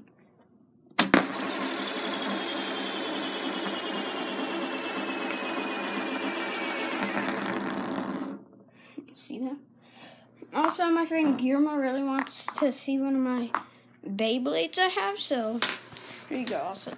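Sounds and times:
spinning tube whirring rattle: 1.1s - 8.5s.

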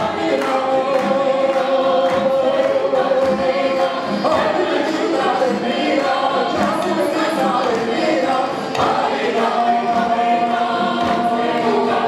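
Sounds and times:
folk choir singing: 0.0s - 12.0s.

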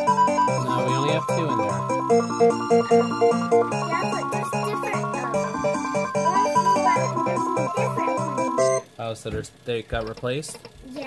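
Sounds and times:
slot machine electronic tune: 0.0s - 8.8s.

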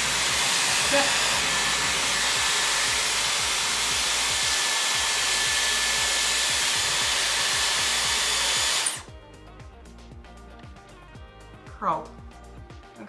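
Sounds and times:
hair styler air rush: 0.0s - 9.1s.

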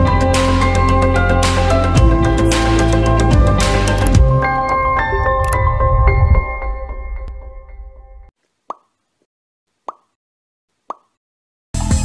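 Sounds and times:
background music: 0.0s - 8.3s
cartoon pop sound effects: 8.7s - 8.9s, 9.9s - 10.2s, 10.9s - 11.2s.

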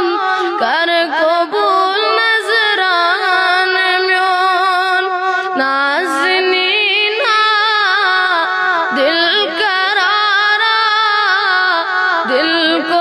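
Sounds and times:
boy singing: 0.0s - 13.0s.

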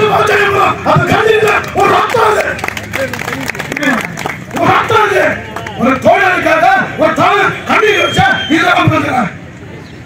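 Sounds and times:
man speaking over loudspeaker: 0.0s - 9.4s.

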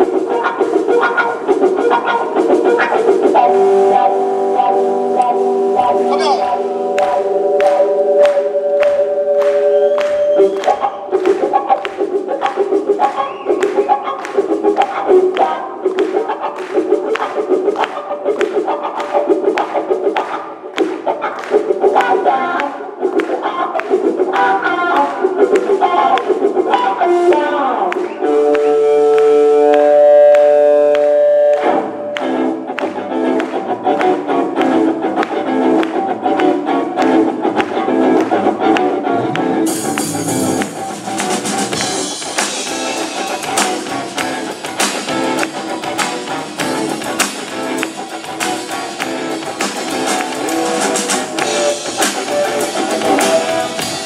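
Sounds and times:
blues-rock band playing: 0.0s - 54.0s.

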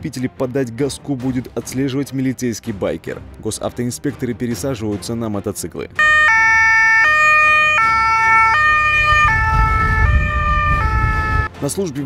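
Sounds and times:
two-tone motorcycle siren: 6.0s - 11.5s.

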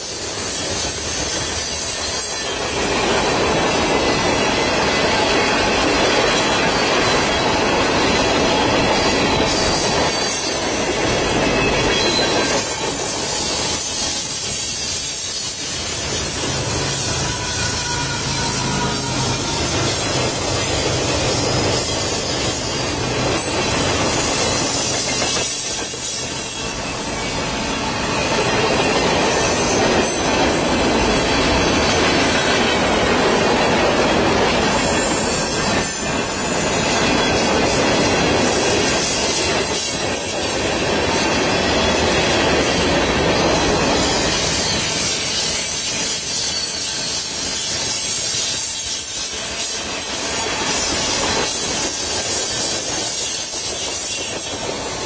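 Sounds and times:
freight train wheels clattering on rail: 0.0s - 55.0s.

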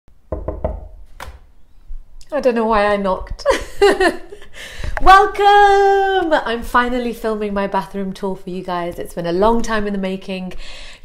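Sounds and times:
knocks on a wooden door: 0.3s - 1.0s.

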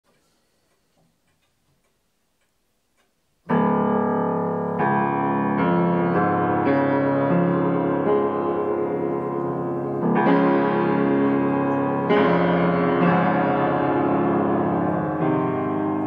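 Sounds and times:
faint clicks: 0.1s - 3.2s
piano chords: 3.4s - 16.0s.

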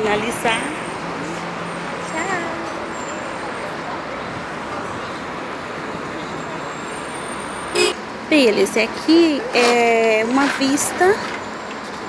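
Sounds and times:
faint voices of passers-by: 0.0s - 12.0s
road traffic passing: 0.0s - 12.0s.

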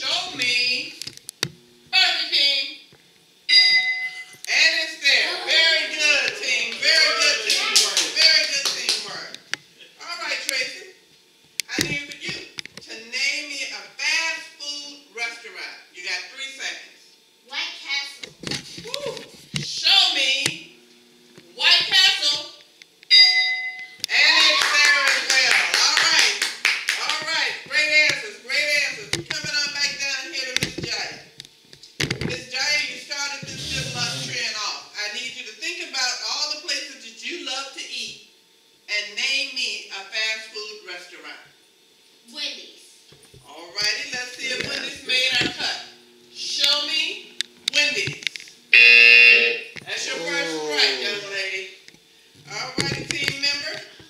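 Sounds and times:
game-show buzzer: 3.5s - 4.4s, 23.1s - 24.0s, 33.5s - 34.4s, 48.7s - 51.2s
people clapping: 6.1s - 9.3s, 24.3s - 27.3s
group of people shouting: 50.0s - 51.3s.

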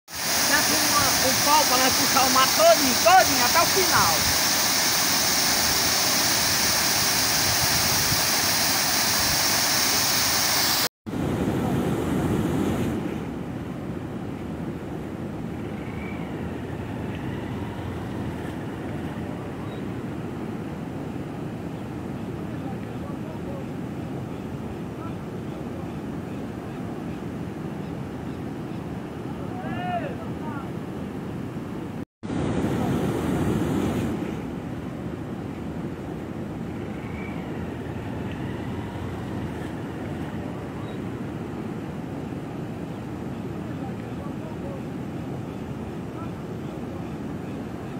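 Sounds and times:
water rushing over dam spillway: 0.1s - 10.9s.

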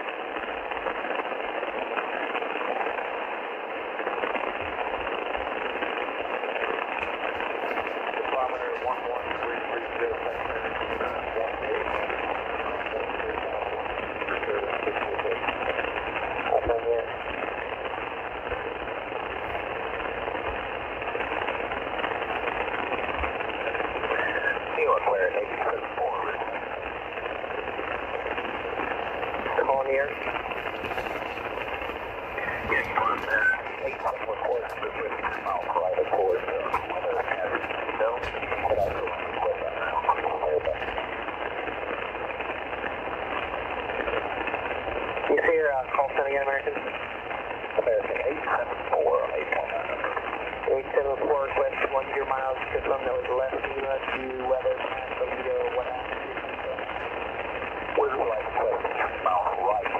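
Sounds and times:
radio hiss and static: 0.0s - 59.9s
faint radio voice fragments: 4.1s - 43.2s, 45.2s - 59.9s.

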